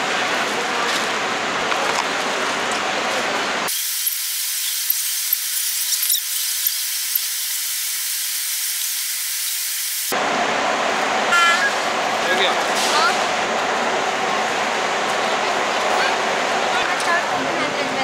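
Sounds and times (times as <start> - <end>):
thin bright hiss: 3.7 - 10.1.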